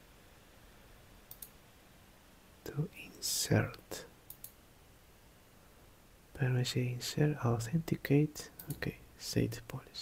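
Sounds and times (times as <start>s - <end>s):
computer mouse clicks: 1.3s - 1.6s, 4.3s - 4.6s, 8.6s - 8.9s.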